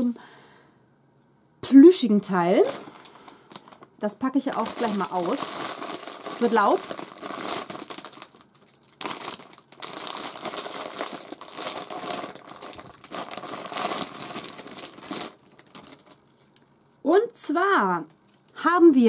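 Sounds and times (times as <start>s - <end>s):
crinkly wrapping torn and crumpled: 2.6s - 16.7s.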